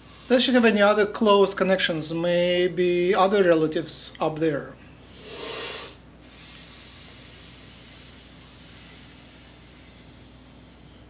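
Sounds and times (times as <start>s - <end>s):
slow breath hissing: 0.0s - 0.4s, 5.0s - 11.0s.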